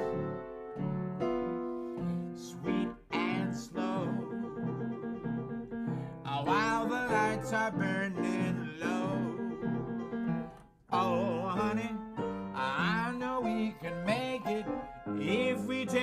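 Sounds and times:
man singing slow jazz: 2.2 - 4.6, 6.2 - 9.7, 10.9 - 16.0.

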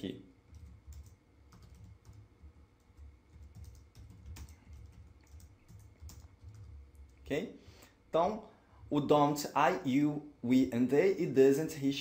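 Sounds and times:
faint keyboard typing: 0.4 - 7.3.

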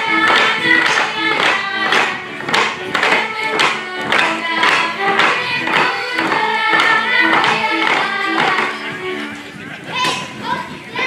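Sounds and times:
folk band playing dance tune: 0.0 - 11.0.

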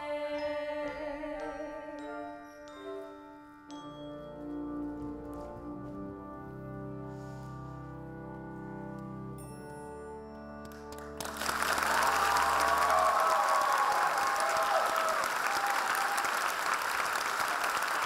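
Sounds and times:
band chord with brass: 5.3 - 8.0
audience applause: 10.9 - 18.0.

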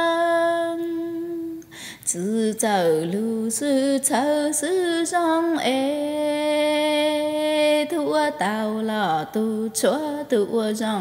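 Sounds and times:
woman singing unaccompanied: 0.0 - 11.0.

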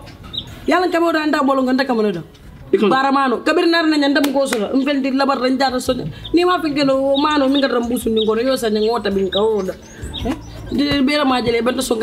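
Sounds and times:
woman talking: 0.7 - 12.0.

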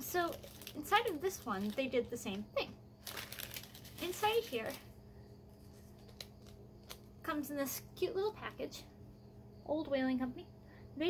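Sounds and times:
steady low hum: 0.0 - 11.0
light ticks of paper package: 0.3 - 1.8, 3.0 - 4.9, 5.8 - 7.1.

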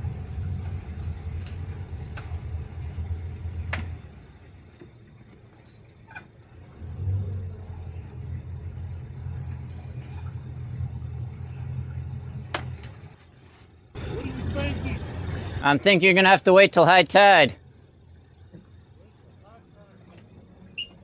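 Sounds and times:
boat engine running: 0.0 - 13.2, 14.0 - 16.4.

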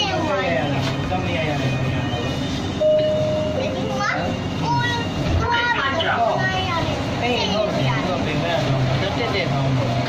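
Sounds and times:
children chattering and calling out: 0.0 - 10.0
low hum of train running: 0.0 - 10.0.

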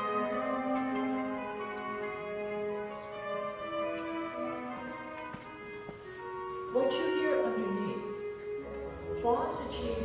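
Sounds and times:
orchestral music: 0.0 - 10.0.

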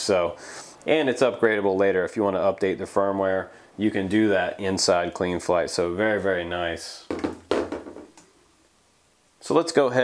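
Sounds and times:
quadcopter knocking on desk: 7.1 - 8.1.

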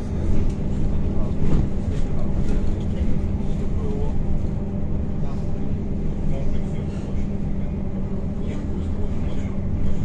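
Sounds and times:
bus tyres and body rumbling: 0.0 - 10.0
constant low hum: 0.0 - 10.0.

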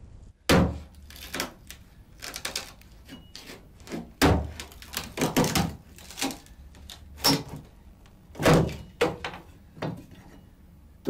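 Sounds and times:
axe chopping floorboards: 0.5 - 1.6, 3.9 - 6.3.

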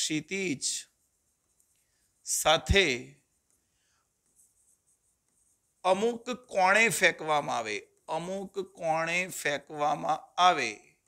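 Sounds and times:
man speaking: 0.0 - 1.0, 2.2 - 3.2, 5.8 - 10.9
hand writing on a board: 0.8 - 7.1.

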